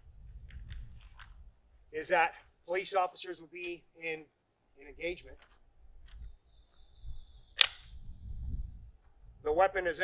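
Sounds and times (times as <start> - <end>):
handgun metallic click: 7.6 - 7.9.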